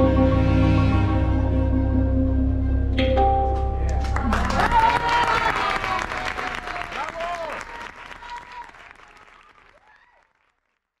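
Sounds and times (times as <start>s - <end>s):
audience applauding: 3.9s - 11.0s.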